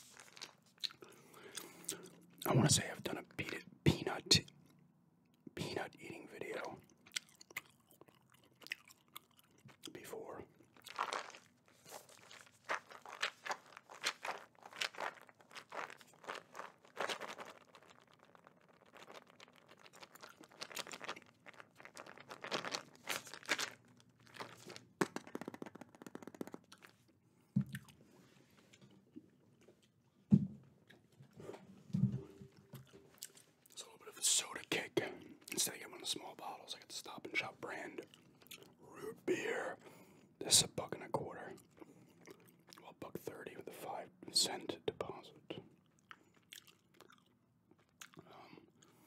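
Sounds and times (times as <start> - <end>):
gum chewing: 0.2 - 2.5, 6.8 - 27.1, 41.5 - 42.8, 45.8 - 49.0
peanuts rattling in plastic jar: 18.9 - 26.6.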